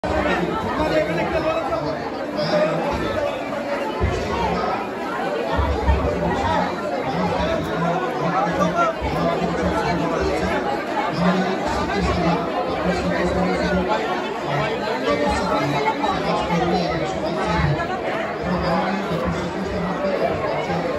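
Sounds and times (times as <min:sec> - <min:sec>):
crowd chattering in echoing hall: 0:00.0 - 0:20.9.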